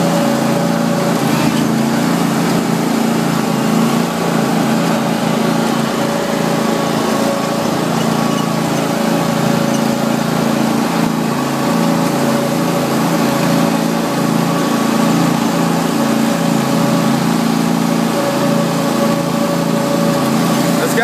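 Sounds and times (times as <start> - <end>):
mower engine running: 0.0 - 21.0.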